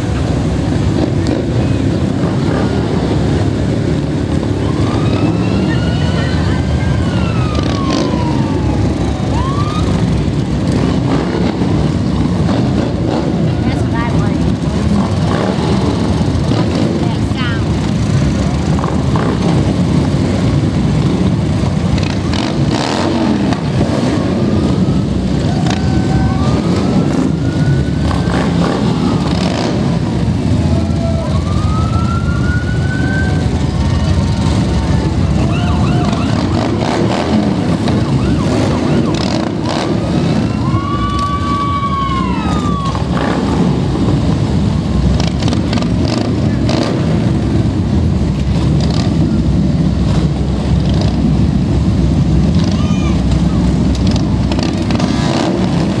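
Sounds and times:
parade vehicles rumbling: 0.0 - 56.0
siren whoops: 4.5 - 10.4, 24.5 - 33.8, 35.4 - 36.8, 37.7 - 43.6.

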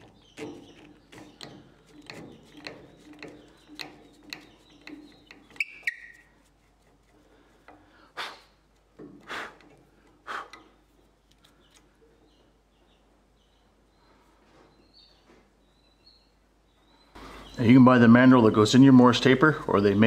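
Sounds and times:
threads rasping into wood: 0.0 - 8.1.

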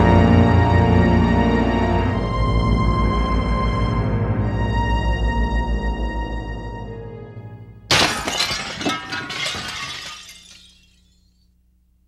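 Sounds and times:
glass shards clinking: 7.9 - 11.1
window glass shattering: 7.9 - 11.1.

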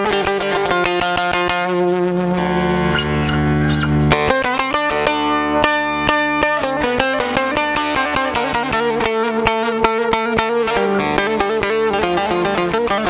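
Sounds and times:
long-necked lute playing: 0.0 - 13.0
high gliding tone: 2.8 - 4.0.

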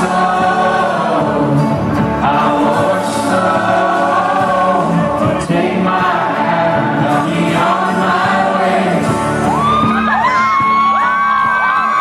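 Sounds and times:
man singing: 0.0 - 9.7
acoustic guitar: 0.0 - 12.0.

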